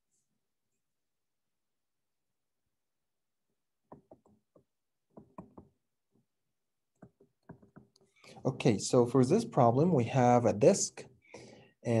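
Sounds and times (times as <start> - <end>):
stylus tapping on surface: 3.9 - 6.3, 6.9 - 8.2.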